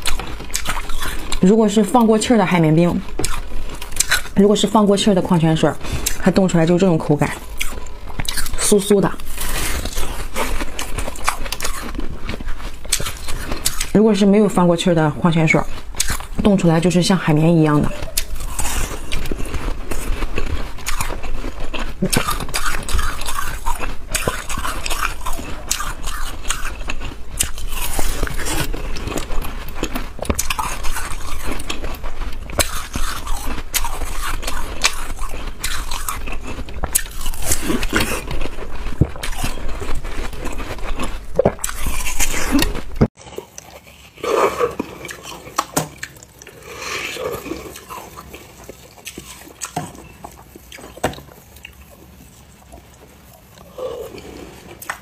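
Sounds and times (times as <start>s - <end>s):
ice being chewed crunching: 0.0s - 55.0s.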